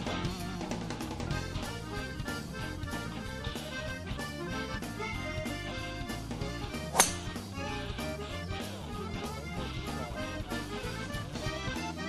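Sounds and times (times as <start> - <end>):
accordion music with steady beat: 0.0 - 12.0
golf driver striking ball: 6.9 - 7.9.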